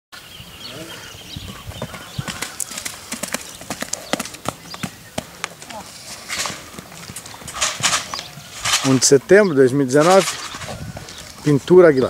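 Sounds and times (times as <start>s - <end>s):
hoofbeats on sand: 1.3s - 9.0s.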